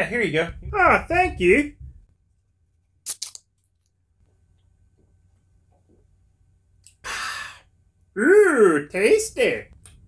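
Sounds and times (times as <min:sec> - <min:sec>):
can tab cracking open: 0:03.0 - 0:03.5.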